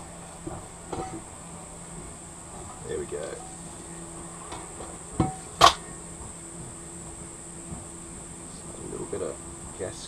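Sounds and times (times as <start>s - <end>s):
sharp metallic knocks: 4.5s - 5.9s.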